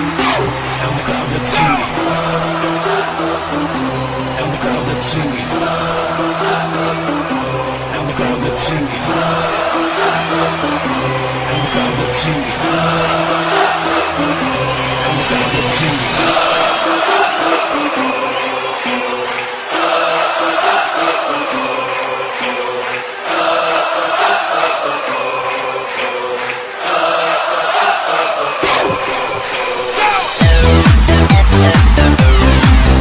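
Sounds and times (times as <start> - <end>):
song with sung vocals: 0.0 - 33.0.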